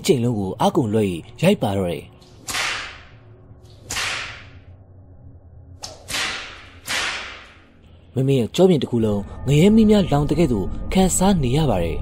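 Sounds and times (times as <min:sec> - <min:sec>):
faint low drone: 0:00.0 - 0:12.0
whip cracks: 0:02.4 - 0:03.1, 0:03.7 - 0:04.6, 0:05.8 - 0:07.6.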